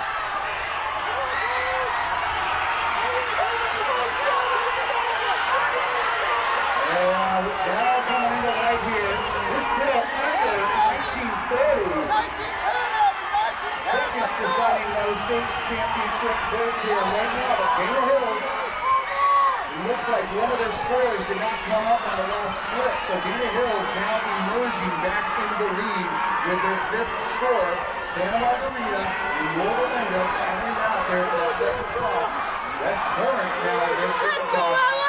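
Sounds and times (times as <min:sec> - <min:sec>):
crowd babble: 0:00.0 - 0:35.0.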